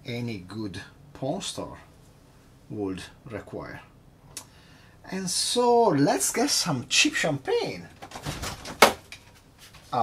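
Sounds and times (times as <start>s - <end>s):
refrigerator door opening and shutting: 8.0s - 9.1s.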